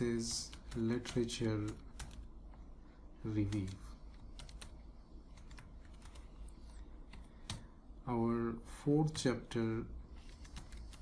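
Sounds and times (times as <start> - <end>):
keyboard typing: 0.3 - 2.3, 3.4 - 7.7, 10.2 - 11.0.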